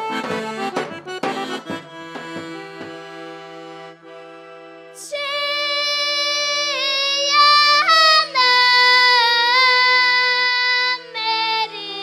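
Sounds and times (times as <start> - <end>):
girl singing folk song: 5.0 - 12.0.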